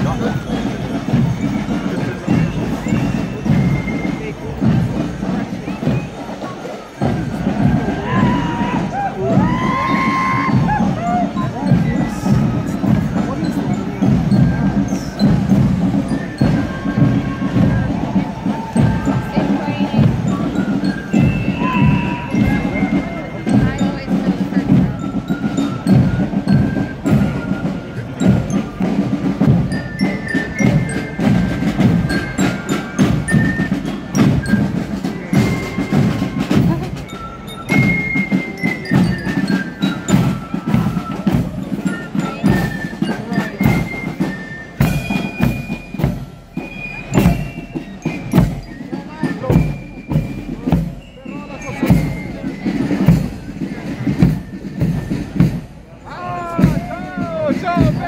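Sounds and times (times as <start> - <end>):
bass and snare drums: 0.0 - 58.0
shrill fife melody: 7.0 - 58.0.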